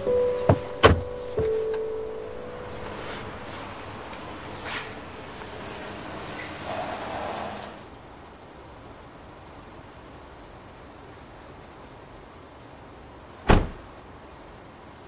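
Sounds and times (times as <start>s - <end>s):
car door slamming: 0.0s - 6.0s, 13.5s - 13.9s
car coming to a stop: 0.0s - 7.9s.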